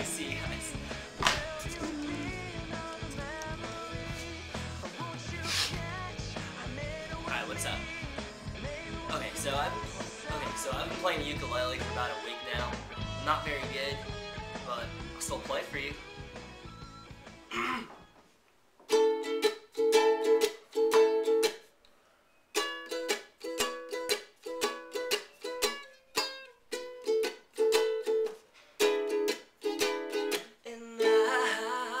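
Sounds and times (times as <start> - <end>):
man singing: 0.0 - 13.9, 30.6 - 32.0
ukulele strumming chords: 0.0 - 16.3, 18.9 - 21.7, 22.5 - 32.0.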